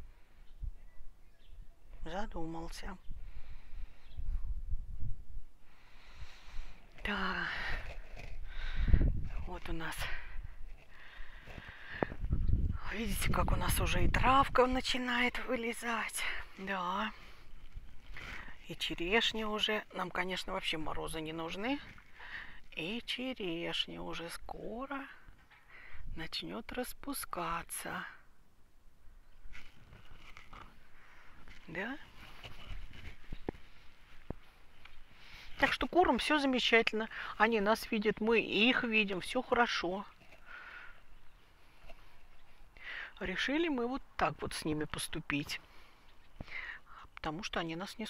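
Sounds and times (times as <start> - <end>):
wind rumble on microphone: 2.9 - 5.6, 7.5 - 10.8, 11.4 - 15.2
faint rustle: 3.0 - 13.0, 14.9 - 23.6, 29.0 - 37.4, 38.7 - 43.2
faint footsteps: 29.4 - 35.6
rustling handling noise: 29.4 - 35.9.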